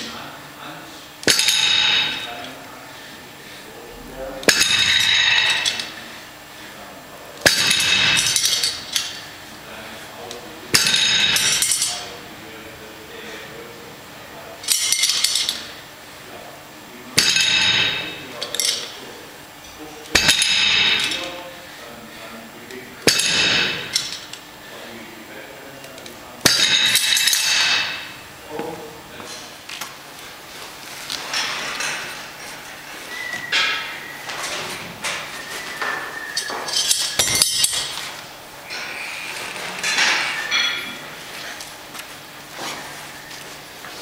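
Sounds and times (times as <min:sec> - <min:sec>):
weight plates clanking: 0:04.0 - 0:05.9, 0:33.1 - 0:38.1.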